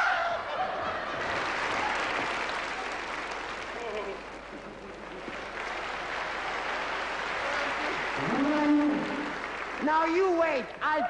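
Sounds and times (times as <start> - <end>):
audience applauding: 0.9 - 11.0.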